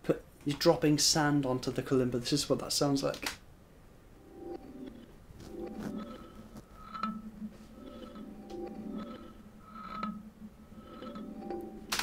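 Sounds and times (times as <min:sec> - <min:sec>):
reversed kalimba notes: 0:04.2 - 0:12.0.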